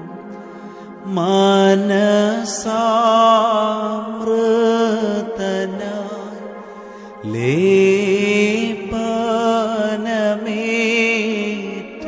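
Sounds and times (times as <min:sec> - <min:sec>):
keyboard melody of gliding notes: 0:00.0 - 0:12.0.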